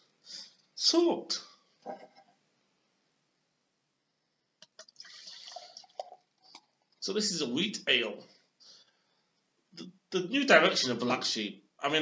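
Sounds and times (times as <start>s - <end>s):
beer pouring into glass: 4.8s - 7.0s.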